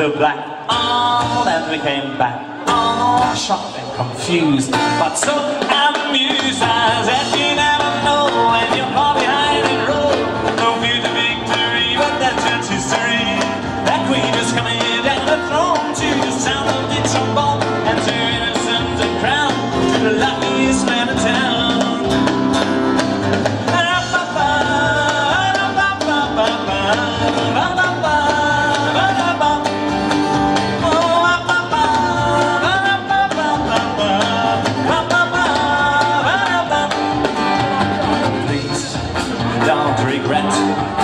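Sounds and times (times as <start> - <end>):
band playing instrumental: 0.0 - 41.0
wavering lead melody: 15.1 - 26.6.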